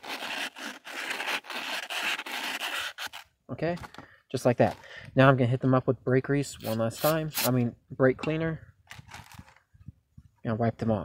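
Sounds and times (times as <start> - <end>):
sandpaper scraping on metal: 0.0 - 3.2, 6.6 - 7.6.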